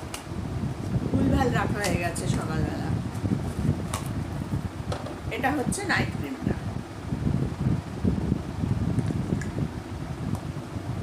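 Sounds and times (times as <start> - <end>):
fan air buffeting microphone: 0.0 - 11.0.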